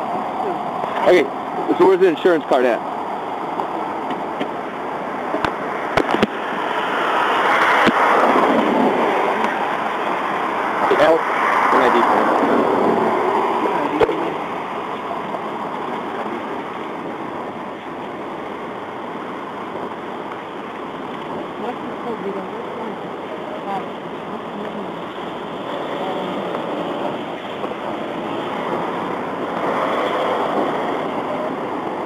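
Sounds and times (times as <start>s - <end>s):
vehicles passing: 0.0s - 32.0s
muffled indistinct talk: 13.5s - 16.8s, 21.6s - 28.4s.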